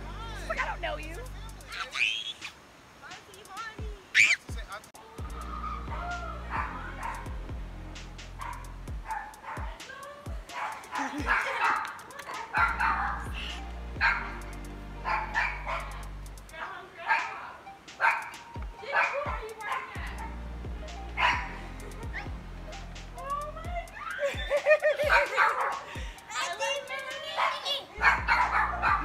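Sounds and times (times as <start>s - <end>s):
dog barking: 5.6s - 7.4s, 8.4s - 9.8s, 10.5s - 13.4s, 14.0s - 14.4s, 15.0s - 16.0s, 17.0s - 20.4s, 21.2s - 21.6s, 25.1s - 25.9s, 27.3s - 29.0s.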